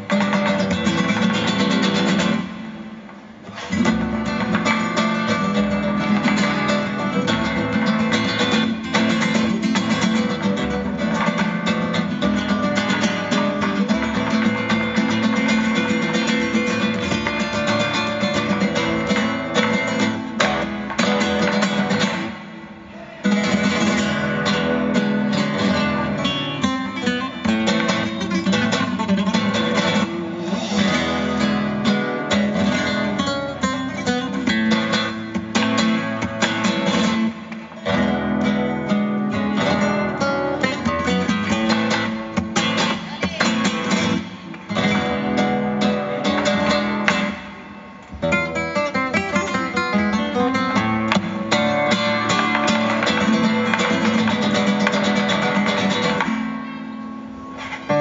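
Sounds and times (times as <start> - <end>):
live flamenco music: 0.0 - 58.0
nylon-string guitar: 0.0 - 58.0
percussion strikes: 27.4 - 38.4.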